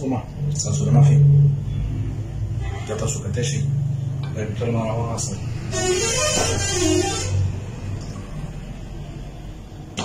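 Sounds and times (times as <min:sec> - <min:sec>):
liquid pouring through funnel: 0:06.9 - 0:09.0.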